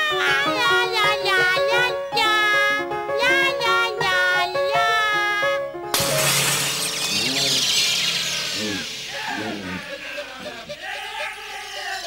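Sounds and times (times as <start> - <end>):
loud crash: 6.0 - 10.2.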